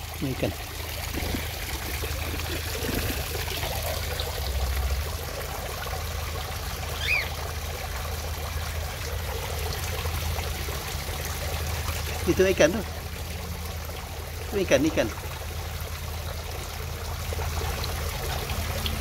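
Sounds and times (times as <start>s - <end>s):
water trickling into pond: 0.0s - 19.0s.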